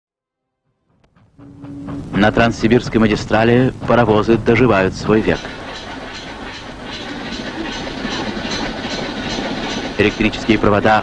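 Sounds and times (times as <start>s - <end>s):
train wheels clattering: 0.9s - 11.0s.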